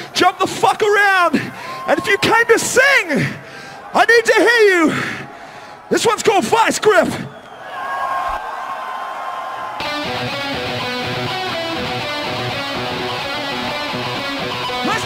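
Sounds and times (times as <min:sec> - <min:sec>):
heavy metal band playing: 0:09.8 - 0:15.0.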